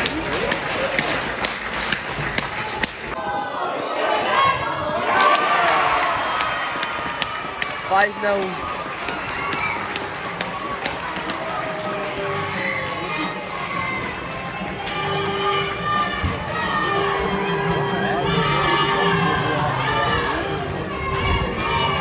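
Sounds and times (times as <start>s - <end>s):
crowd cheering and shouting: 0.0s - 22.0s.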